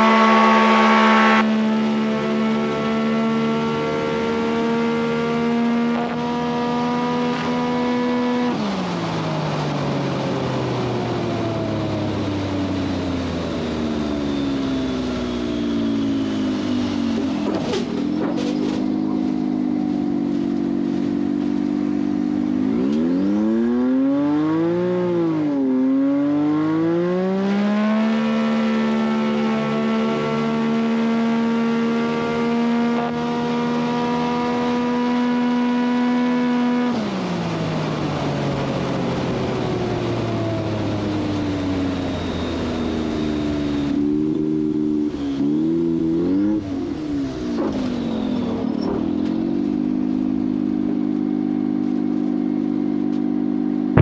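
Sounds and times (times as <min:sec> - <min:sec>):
propeller plane engine drone: 0:00.0 - 0:05.8, 0:06.7 - 0:27.2, 0:28.8 - 0:54.0.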